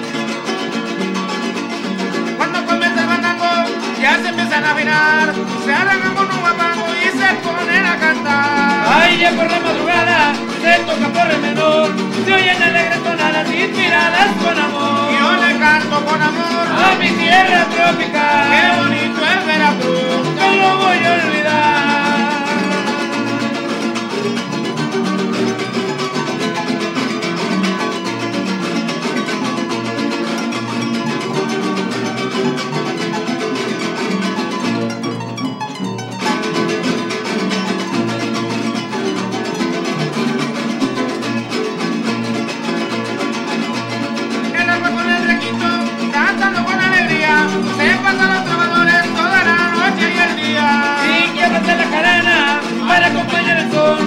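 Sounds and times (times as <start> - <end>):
harp and strummed guitars: 0.0 - 54.0
man singing: 2.3 - 24.6, 44.2 - 54.0.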